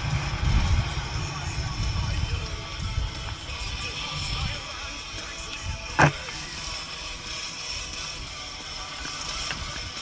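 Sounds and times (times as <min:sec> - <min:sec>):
tyre and wind noise: 0:00.0 - 0:10.0
sharp knock from bike: 0:06.0 - 0:06.2.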